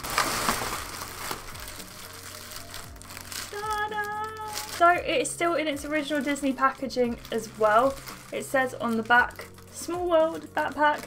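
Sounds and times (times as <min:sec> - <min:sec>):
bubble wrap crinkling: 0:00.0 - 0:11.0
faint music: 0:00.0 - 0:11.0.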